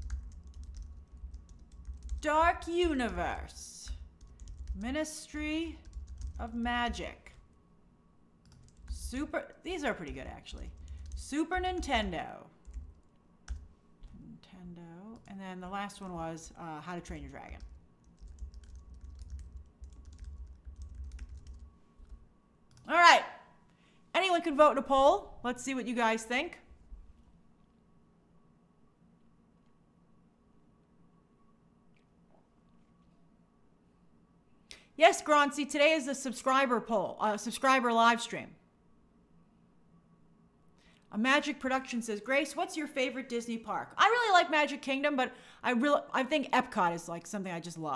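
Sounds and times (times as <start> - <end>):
keyboard typing: 0.0 - 3.2, 3.9 - 4.9, 5.6 - 7.5, 8.4 - 14.2, 17.0 - 22.9
faint low rumble: 0.0 - 22.8
steady low hum: 0.0 - 47.9.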